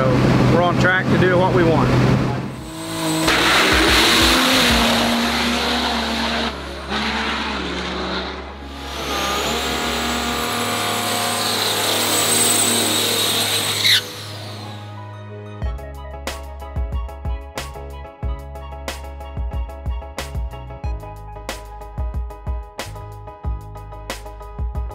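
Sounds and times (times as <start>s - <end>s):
music with steady bass: 0.0s - 7.0s, 8.4s - 11.4s, 14.1s - 24.9s
rough truck engines: 0.0s - 15.3s.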